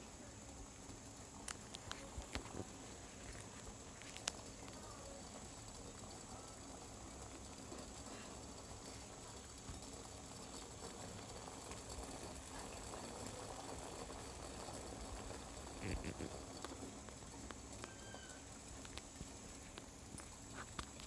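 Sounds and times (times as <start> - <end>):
tea bubbling in a saucepan: 0.0 - 21.0.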